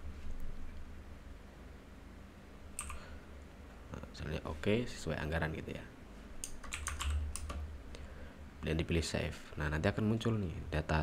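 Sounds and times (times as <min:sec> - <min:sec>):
computer keyboard typing: 0:02.8 - 0:03.0, 0:06.4 - 0:07.6.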